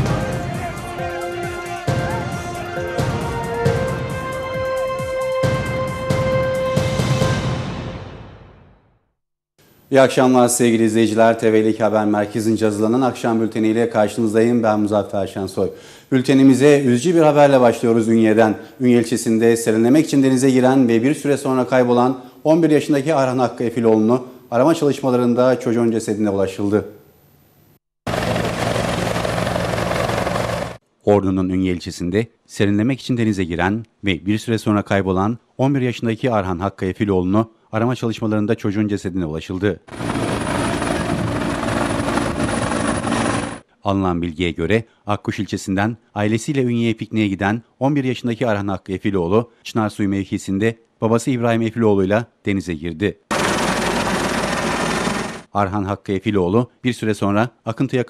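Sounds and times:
helicopter rotor throbbing: 28.1s - 30.8s, 39.9s - 43.6s, 53.3s - 55.5s.

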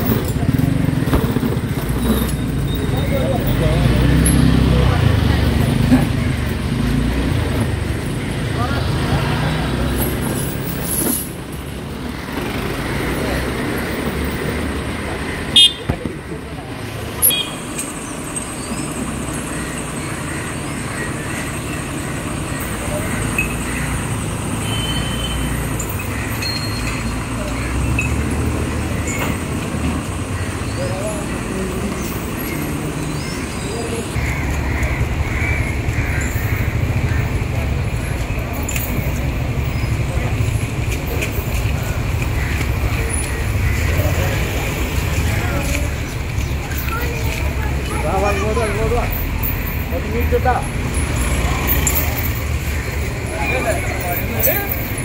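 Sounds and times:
people's voices: 0.0s - 55.0s
street traffic: 0.0s - 55.0s
diesel lorry engine idling: 11.6s - 55.0s.

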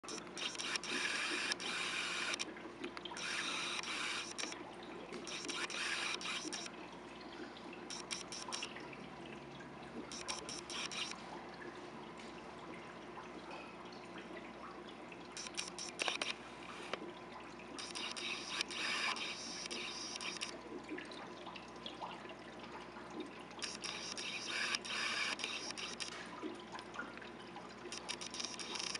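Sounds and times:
small motor whirring: 0.0s - 2.5s, 3.2s - 4.6s, 5.3s - 6.7s, 7.9s - 8.7s, 10.1s - 11.2s, 15.4s - 17.0s, 17.8s - 20.6s, 23.6s - 26.2s, 27.9s - 28.9s
aquarium water splashing and bubbling: 0.0s - 28.9s
sharp clicks: 0.1s - 4.6s, 15.4s - 16.4s, 27.9s - 28.9s.

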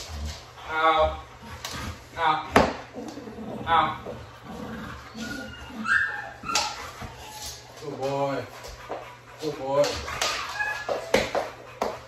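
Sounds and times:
dog whimpering: 2.8s - 8.0s, 10.1s - 11.4s.

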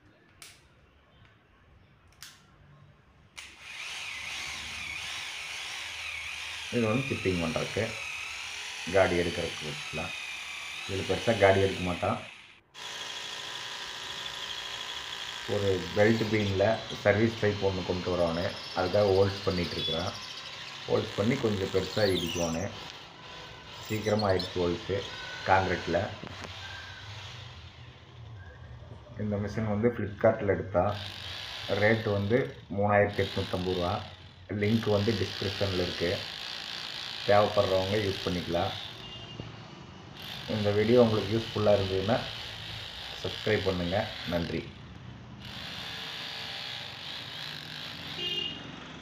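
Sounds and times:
hammer drill boring into wall: 3.4s - 28.2s, 30.9s - 39.1s, 40.2s - 44.8s, 45.4s - 48.4s
person speaking: 10.8s - 12.4s, 20.9s - 22.9s, 23.8s - 26.4s.

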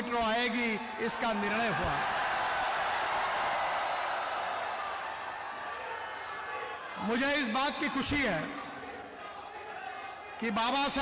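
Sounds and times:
audience applauding: 2.0s - 6.6s.

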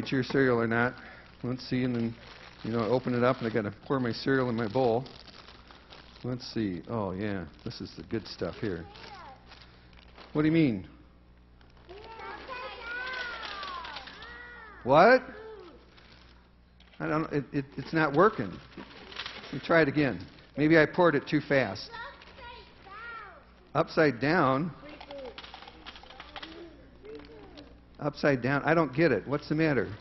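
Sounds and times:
faint rustling: 0.0s - 10.6s, 11.2s - 23.8s
children calling out: 11.9s - 16.1s, 21.9s - 23.5s.

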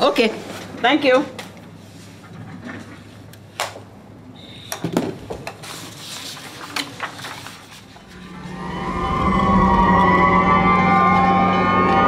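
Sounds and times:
emergency vehicle sirens: 8.0s - 12.0s.

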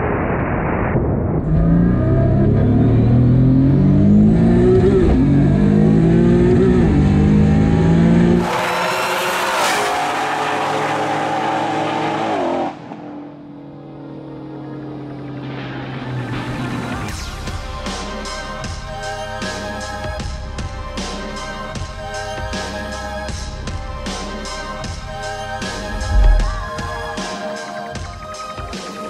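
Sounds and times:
race car engine at full throttle: 1.4s - 17.1s, 25.6s - 26.8s.

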